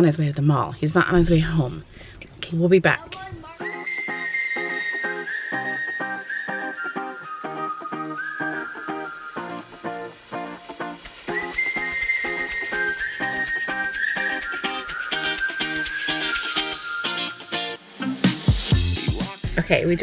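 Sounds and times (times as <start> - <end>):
whistled melody: 3.6 - 19.3.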